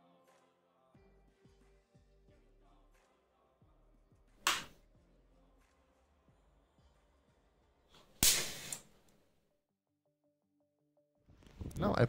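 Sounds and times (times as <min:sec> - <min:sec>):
firework igniter popping: 0:04.4 - 0:04.8, 0:08.0 - 0:09.1
short hiss: 0:08.0 - 0:09.1.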